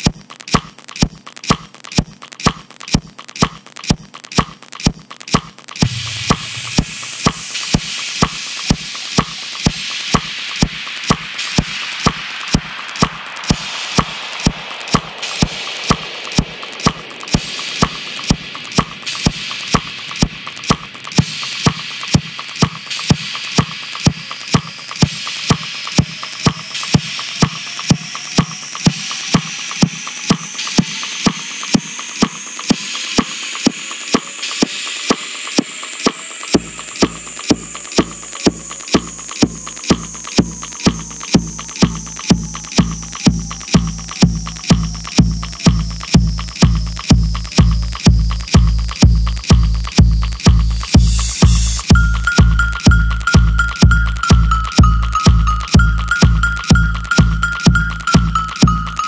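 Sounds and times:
electronic kick drum: 0:00.0 - 0:59.0
hissing noise layer: 0:05.7 - 0:59.0
rising synth sweep: 0:11.3 - 0:21.2
deep bass: 0:41.4 - 0:58.9.

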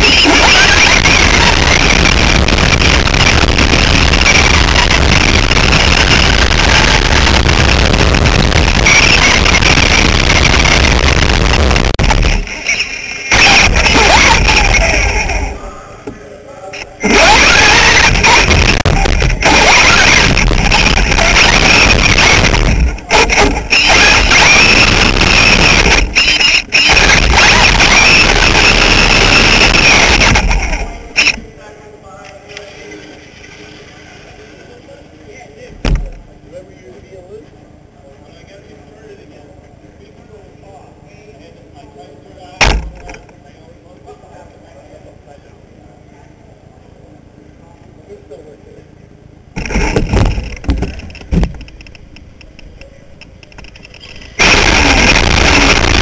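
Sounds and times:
tyre and chassis noise: 0:17.0 - 0:31.5, 0:49.5 - 0:56.0.

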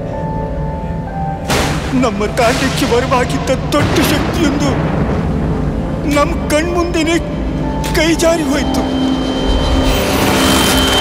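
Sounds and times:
low drone: 0:00.0 - 0:11.0.

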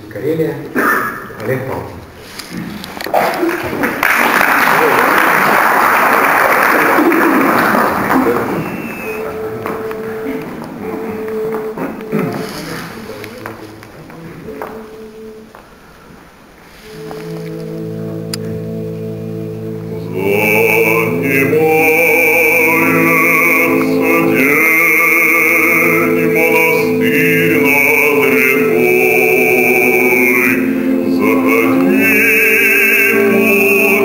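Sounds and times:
applause in a hall: 0:03.2 - 0:09.8
male vocal ensemble harmony: 0:06.8 - 0:13.0, 0:16.8 - 0:34.0
pitch notes: 0:07.0 - 0:12.3, 0:16.9 - 0:34.0
solo voice singing: 0:08.6 - 0:12.5, 0:16.9 - 0:34.0.

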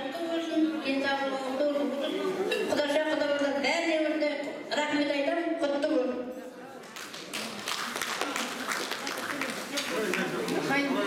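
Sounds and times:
people clapping: 0:06.8 - 0:11.0.

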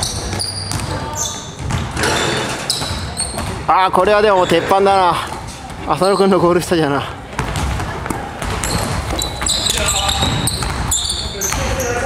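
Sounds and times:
basketball bouncing on wooden floor: 0:00.0 - 0:03.7, 0:07.4 - 0:11.9
sneakers squeaking on court: 0:00.0 - 0:12.0.

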